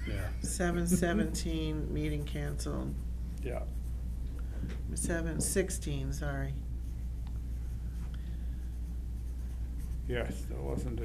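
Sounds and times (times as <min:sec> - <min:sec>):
steady low room hum: 0:00.0 - 0:11.0
pen scratching on paper: 0:00.4 - 0:04.2, 0:04.9 - 0:10.6.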